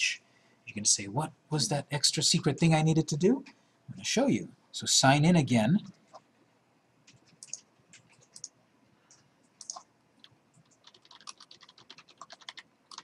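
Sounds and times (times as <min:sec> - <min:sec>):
typing on computer keyboard: 0:07.1 - 0:08.5, 0:09.6 - 0:13.0.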